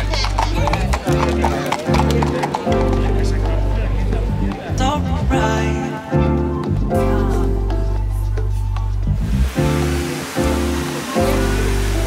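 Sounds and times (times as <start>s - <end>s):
hooves clip-clopping on pavement: 0.0s - 5.3s
background music: 0.0s - 12.0s.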